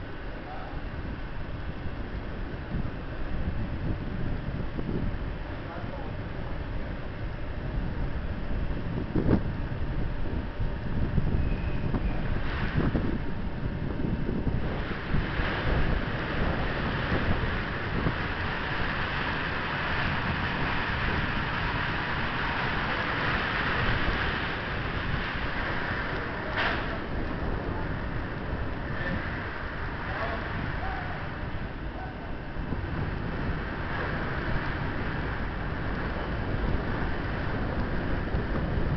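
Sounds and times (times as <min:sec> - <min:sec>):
locomotive fan rushing: 0:00.0 - 0:38.9
wind buffeting microphone: 0:00.0 - 0:38.9.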